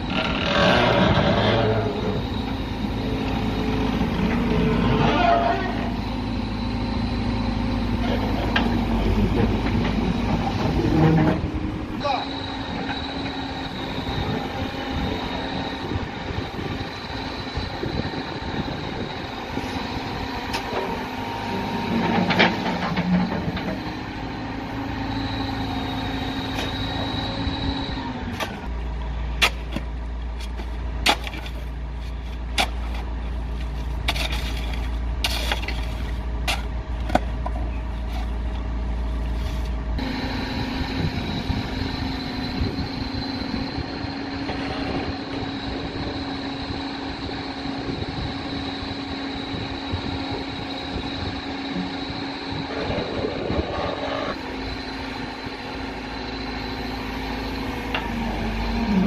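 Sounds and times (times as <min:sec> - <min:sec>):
diesel engine running: 0:00.0 - 0:59.0
thin high whine: 0:11.0 - 0:22.4, 0:39.4 - 0:59.0.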